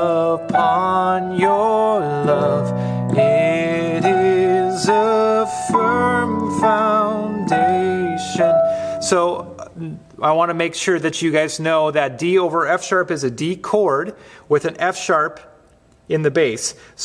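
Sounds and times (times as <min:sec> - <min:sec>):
keyboard lead line: 0:00.0 - 0:10.1.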